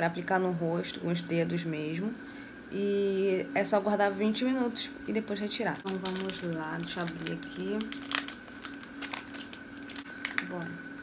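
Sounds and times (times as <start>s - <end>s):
faint steady hum: 0.0s - 11.0s
packet crinkling: 5.8s - 10.6s.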